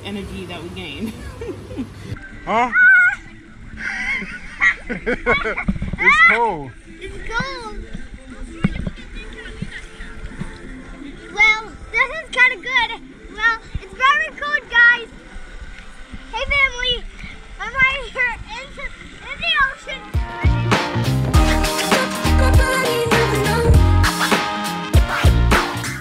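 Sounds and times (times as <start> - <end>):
child squealing: 2.7 - 3.3
water splashing: 2.8 - 23.2
music: 6.0 - 16.3, 17.1 - 26.0.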